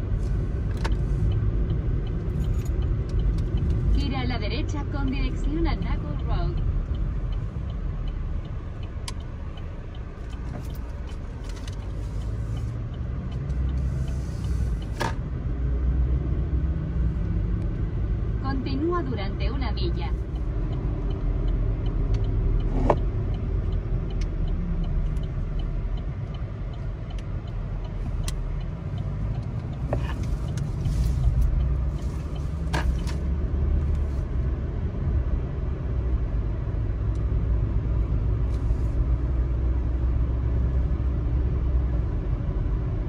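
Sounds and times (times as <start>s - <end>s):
car road and engine rumble: 0.0s - 43.0s.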